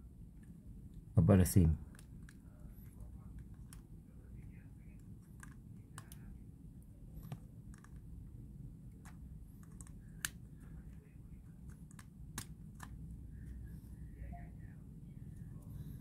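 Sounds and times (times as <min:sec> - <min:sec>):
faint low background hum: 0:00.0 - 0:16.0
small plastic clicks and taps: 0:11.6 - 0:13.0.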